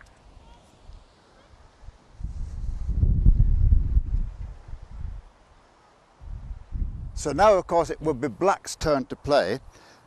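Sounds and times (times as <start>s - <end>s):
wind buffeting microphone: 1.8s - 5.3s, 6.2s - 7.8s.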